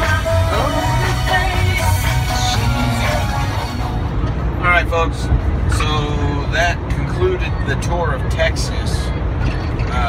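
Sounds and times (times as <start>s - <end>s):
man's voice: 0.0s - 3.8s
truck engine and road rumble: 0.0s - 10.0s.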